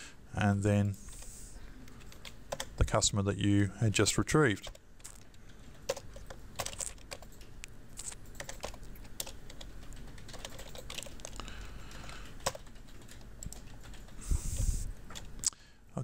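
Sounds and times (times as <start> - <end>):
keyboard keys clicking: 5.9 - 7.5, 8.3 - 11.4, 12.2 - 14.2.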